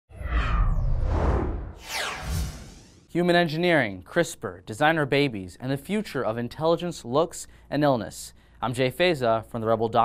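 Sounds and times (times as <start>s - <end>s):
deep low rumble: 0.1s - 3.0s
falling swish: 0.1s - 3.1s
rushing swoosh: 0.1s - 3.1s.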